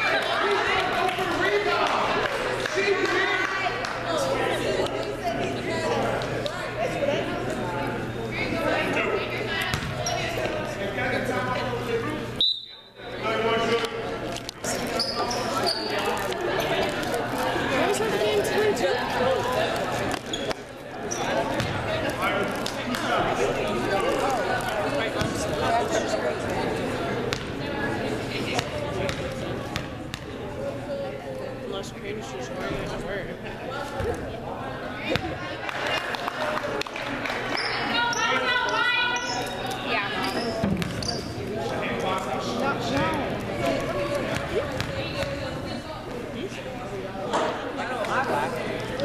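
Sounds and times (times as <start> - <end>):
spectators chattering: 0.0 - 49.0.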